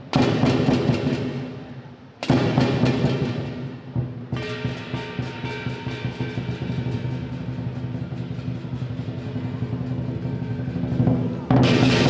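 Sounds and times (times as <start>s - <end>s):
cymbals crashing: 2.2s - 12.0s
gong: 4.4s - 12.0s.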